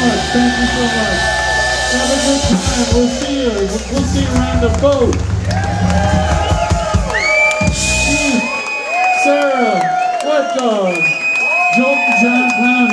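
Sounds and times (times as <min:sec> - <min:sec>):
audience cheering and whooping: 0:00.0 - 0:12.9.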